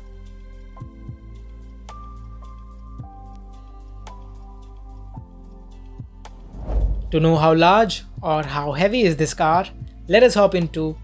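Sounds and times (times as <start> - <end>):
low thumps: 6.4 - 7.7.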